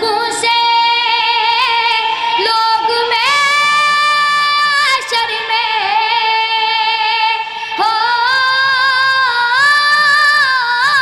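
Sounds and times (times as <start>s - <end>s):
boy singing unaccompanied: 0.0s - 11.0s.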